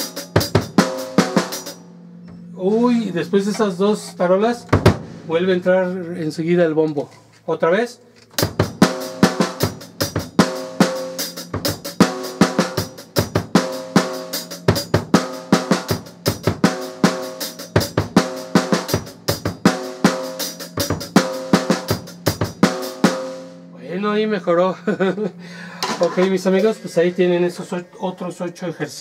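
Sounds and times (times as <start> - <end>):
bass drum kicks: 4.6 - 6.0.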